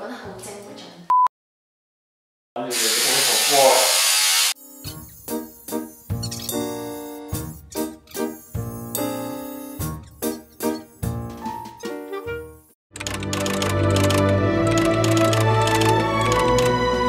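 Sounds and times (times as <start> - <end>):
electric hair clipper buzzing: 2.8 - 5.3.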